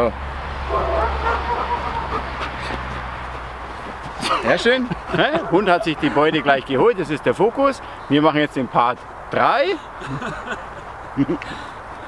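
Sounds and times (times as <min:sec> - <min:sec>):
young dog barking: 0:00.7 - 0:02.4, 0:05.2 - 0:06.6.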